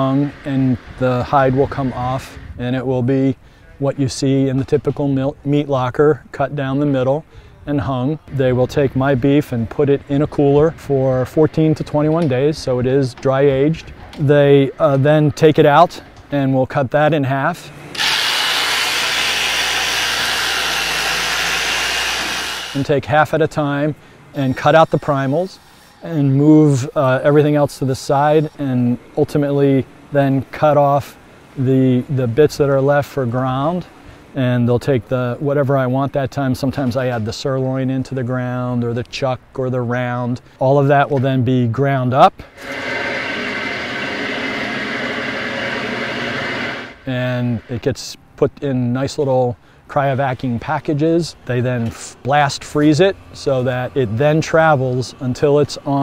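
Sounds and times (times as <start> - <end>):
electric saw cutting meat: 17.9 - 22.8, 42.5 - 47.7
high whine: 42.5 - 48.2.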